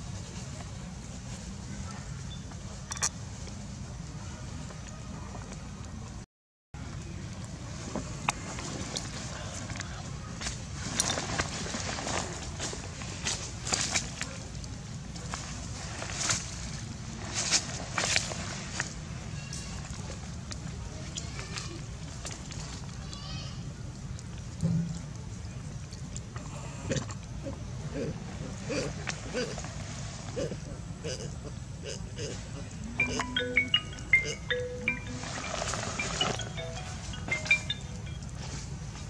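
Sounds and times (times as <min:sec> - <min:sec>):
dry leaves crackling: 0:10.4 - 0:23.4, 0:33.3 - 0:39.0.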